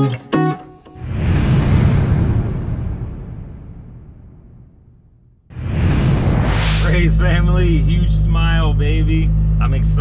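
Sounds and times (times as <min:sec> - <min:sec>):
cinematic whoosh: 0:01.0 - 0:07.4
deep rumble: 0:01.0 - 0:09.7.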